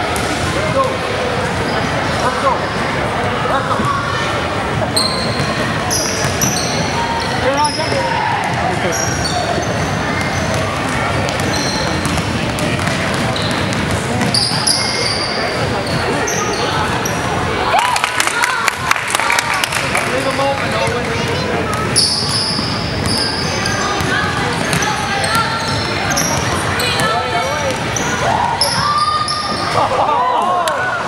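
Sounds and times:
indistinct echoing voices: 0:00.0 - 0:31.0
sneakers squeaking on floor: 0:04.9 - 0:17.4, 0:20.8 - 0:29.9
basketball bouncing: 0:10.2 - 0:14.5, 0:21.6 - 0:28.0.

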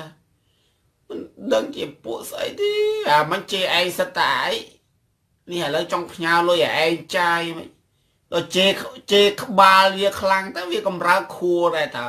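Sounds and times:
person speaking: 0:00.0 - 0:00.2, 0:01.1 - 0:04.8, 0:05.4 - 0:12.0.

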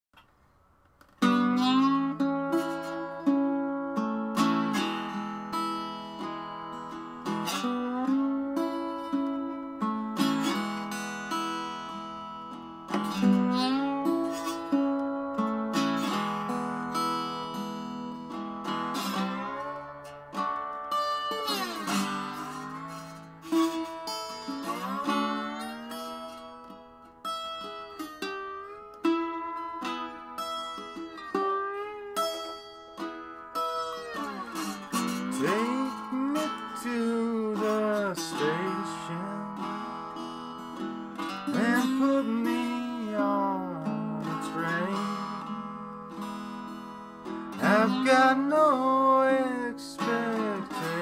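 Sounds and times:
slide acoustic guitar: 0:01.0 - 0:51.0.

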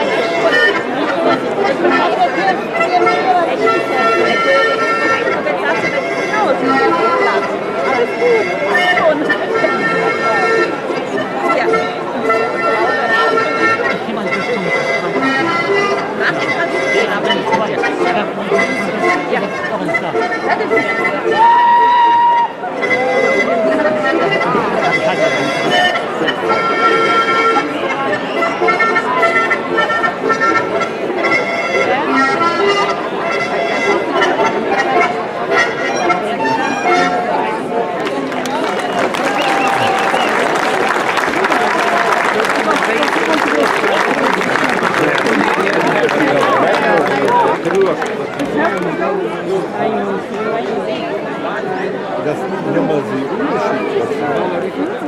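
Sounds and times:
accordion folk dance tune: 0:00.0 - 0:55.0
crowd voices: 0:00.0 - 0:55.0.

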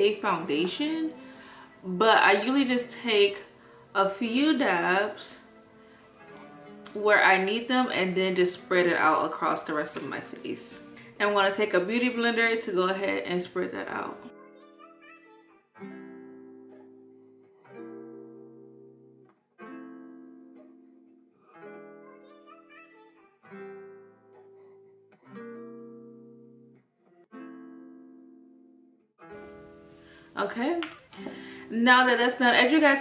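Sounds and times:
plucked guitar chords: 0:00.0 - 0:11.2, 0:13.2 - 0:32.2.

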